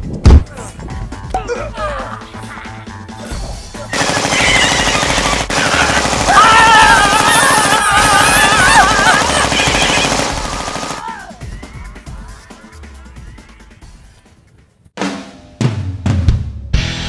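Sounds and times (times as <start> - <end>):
rapid machine-gun rattle: 4.0 - 11.0
woman yelling: 6.3 - 11.5.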